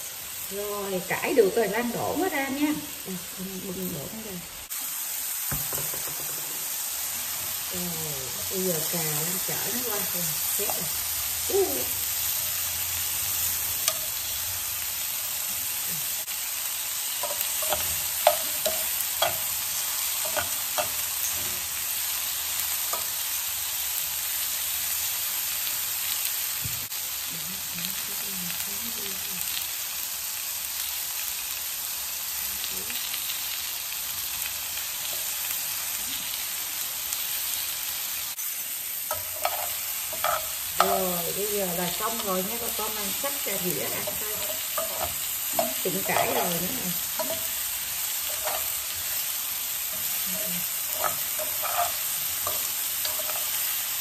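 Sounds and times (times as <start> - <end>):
mushrooms sizzling in frying pan: 0.0 - 54.0
metal tongs clicking on pan: 17.2 - 21.2, 39.1 - 41.1, 44.0 - 47.6, 50.9 - 53.7.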